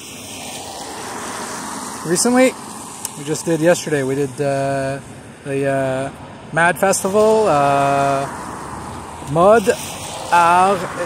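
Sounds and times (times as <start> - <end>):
rushing outdoor background noise: 0.0 - 11.0.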